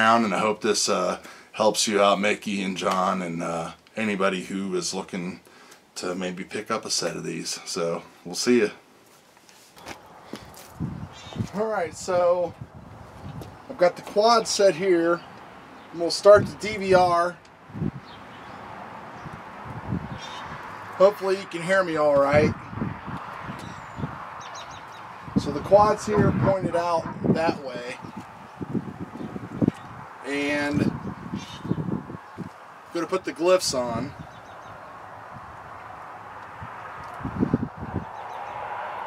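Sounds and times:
outdoor background hiss: 0.0s - 23.2s, 23.8s - 37.0s.

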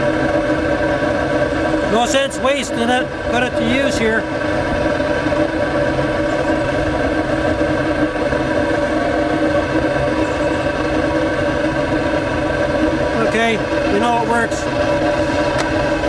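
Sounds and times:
burner exhaust drone from metal pipe: 0.0s - 16.0s.

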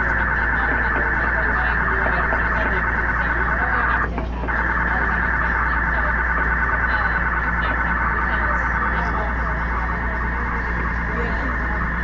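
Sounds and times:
data noise through speakers: 0.0s - 12.0s
steady low hum: 0.0s - 12.0s.

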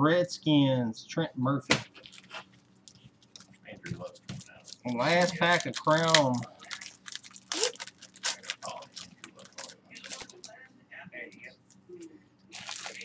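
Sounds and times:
cards being handled: 1.8s - 6.8s, 7.5s - 10.5s
foil wrapper crinkling and tearing: 2.0s - 3.4s, 4.0s - 10.5s, 12.5s - 13.0s.

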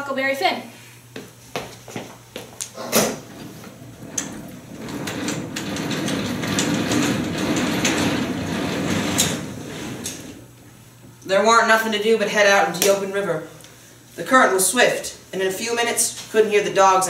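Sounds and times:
stage curtains sliding on track: 2.8s - 10.5s.

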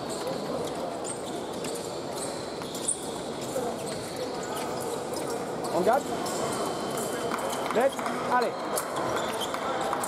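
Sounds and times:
shoe squeak: 0.0s - 10.0s.

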